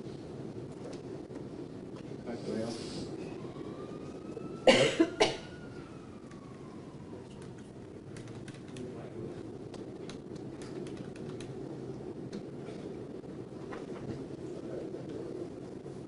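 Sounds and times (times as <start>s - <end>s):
person coughing: 4.6s - 5.5s.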